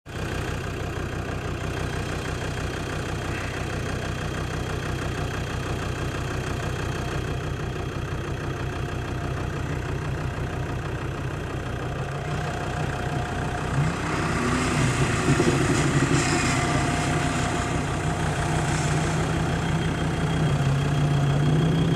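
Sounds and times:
car engine running at low revs: 0.1s - 21.9s.

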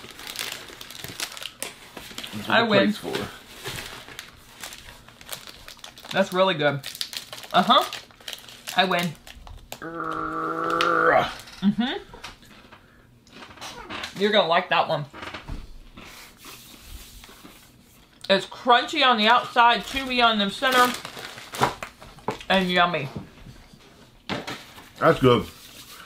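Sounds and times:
foil wrapper crinkling: 0.0s - 10.2s, 19.7s - 22.8s.

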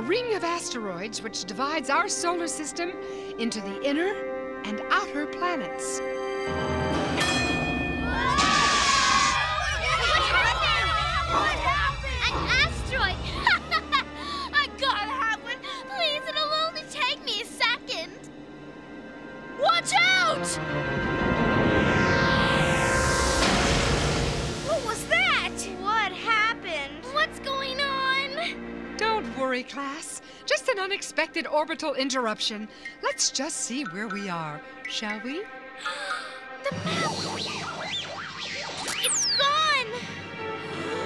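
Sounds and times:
background music: 0.0s - 41.0s
warbling tone: 36.7s - 40.2s
falling whistle: 37.0s - 40.0s.

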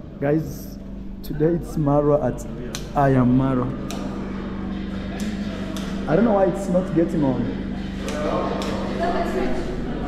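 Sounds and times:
chatter in echoing hall: 0.0s - 10.0s
steady low hum: 0.0s - 10.0s.

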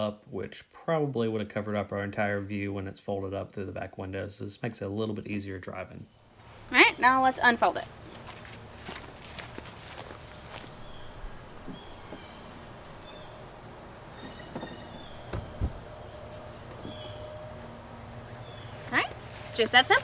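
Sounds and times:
high drone of insects: 6.2s - 20.0s
foam mattress thumps and rustling: 14.2s - 16.0s.

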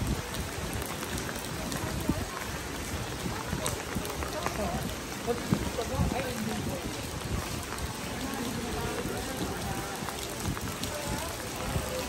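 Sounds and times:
people's voices: 0.0s - 12.0s
rain on paved walkway: 0.0s - 12.0s.

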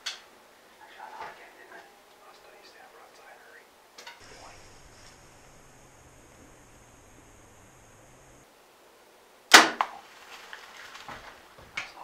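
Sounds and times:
faint rustling: 10.0s - 12.0s.

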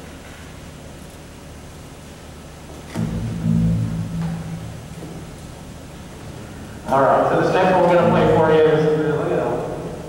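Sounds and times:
low instrument note: 2.9s - 9.9s.

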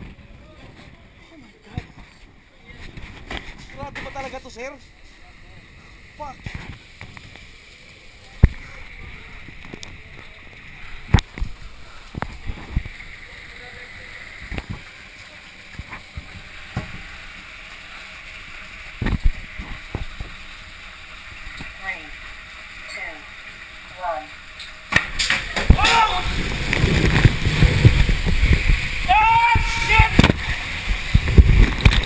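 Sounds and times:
water rushing along a slide: 0.0s - 32.0s.

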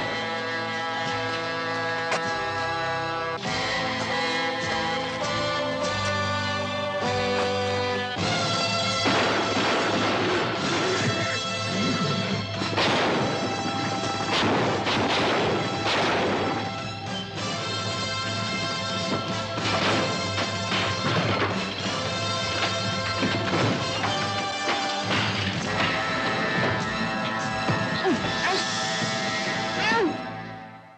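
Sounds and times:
film score with sustained tones: 0.0s - 30.9s.

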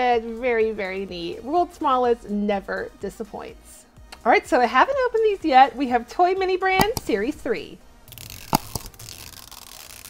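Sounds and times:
plastic shrink wrap rustling: 8.1s - 10.0s
sharp plastic crackles: 8.1s - 10.0s.

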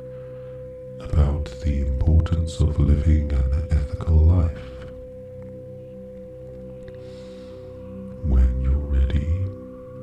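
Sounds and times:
soft low drone: 0.0s - 10.0s.

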